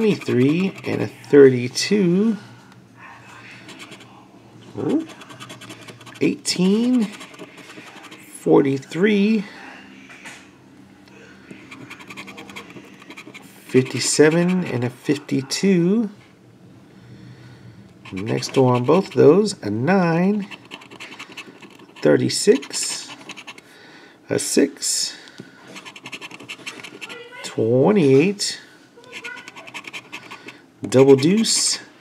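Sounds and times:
scraper scratching lottery ticket: 0.0s - 1.2s, 3.6s - 4.1s, 4.9s - 8.4s, 11.6s - 14.9s, 18.0s - 19.6s, 20.2s - 23.7s, 25.7s - 27.3s, 29.1s - 31.7s.

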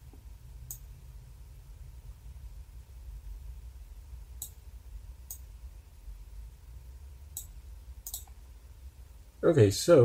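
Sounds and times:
low steady hum: 0.0s - 10.0s
computer mouse clicks: 0.6s - 0.9s, 4.4s - 4.6s, 5.3s - 5.5s, 7.3s - 8.4s.

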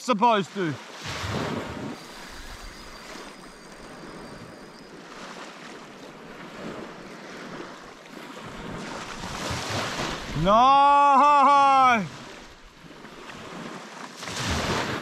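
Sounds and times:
small waves washing onto beach: 0.0s - 15.0s.

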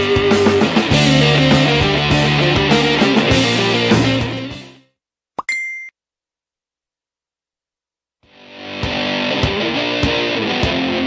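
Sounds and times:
rock music with guitar: 0.0s - 4.8s, 8.4s - 11.0s
high-pitched electronic beep: 5.4s - 5.9s.

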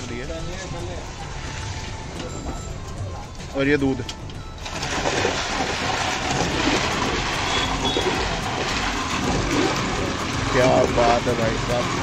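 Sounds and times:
milk pouring: 4.6s - 11.0s
ladle stirring ice and milk: 4.6s - 12.0s.

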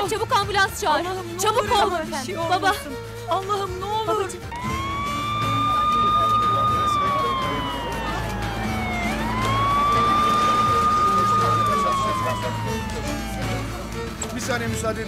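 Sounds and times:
ambulance siren wailing: 4.5s - 14.7s.

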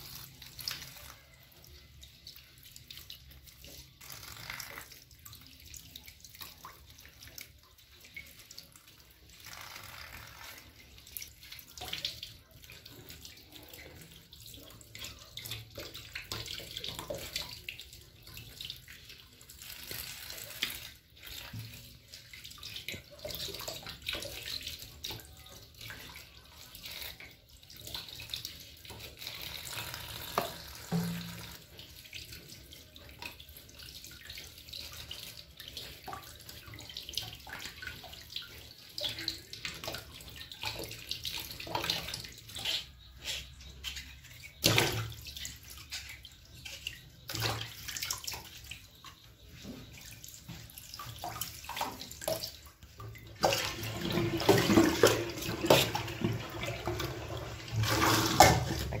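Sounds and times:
vegetables being washed: 0.0s - 59.0s
tap water splashing into sink: 0.3s - 59.0s.

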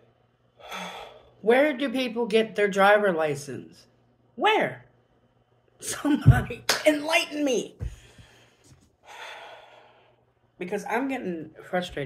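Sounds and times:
woman breathing in: 0.6s - 1.4s, 7.9s - 10.3s.

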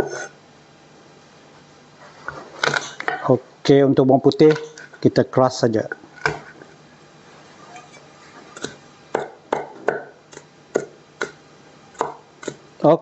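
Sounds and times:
knife chopping on wooden board: 8.6s - 11.4s, 12.0s - 12.6s
knife crushing garlic: 12.0s - 12.6s.

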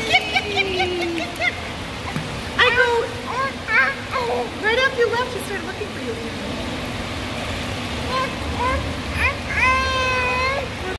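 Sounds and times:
echoing room hum: 0.0s - 10.9s
water noise: 0.0s - 10.9s.

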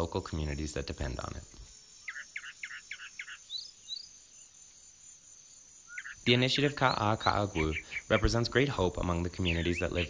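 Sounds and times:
high-pitched insect buzz: 0.6s - 10.0s
bird calling: 1.2s - 5.0s, 5.6s - 10.0s.

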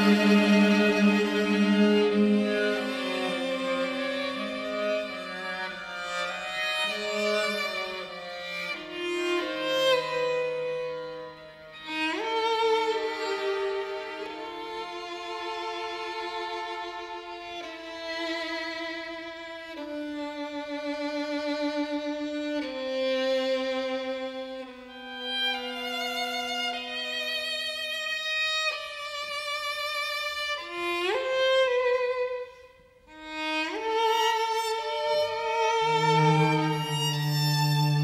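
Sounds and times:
string quartet playing: 0.0s - 27.6s, 30.7s - 38.0s.

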